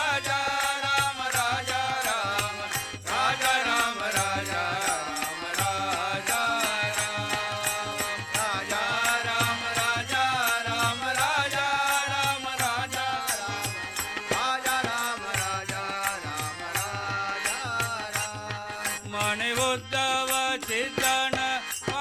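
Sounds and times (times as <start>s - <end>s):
hand claps and clappers: 0.0s - 22.0s
harmonium: 0.0s - 22.0s
men singing chant in chorus: 0.0s - 22.0s
tabla: 0.0s - 22.0s.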